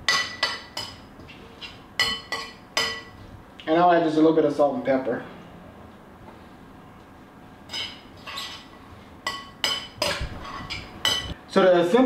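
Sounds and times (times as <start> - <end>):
spoon clinking glass bowl: 2.0 - 3.1.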